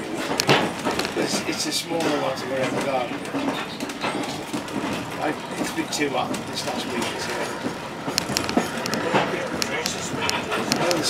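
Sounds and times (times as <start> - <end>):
railway carriage rumble: 0.0 - 11.0
murmur of a voice: 1.0 - 11.0.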